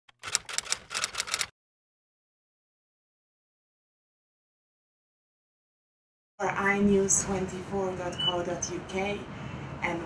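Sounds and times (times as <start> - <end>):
typewriter key clicks: 0.1 - 1.5.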